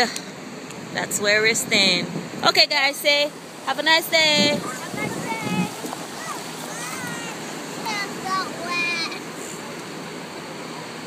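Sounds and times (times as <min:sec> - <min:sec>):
wind: 0:00.0 - 0:11.0
surf: 0:01.6 - 0:11.0.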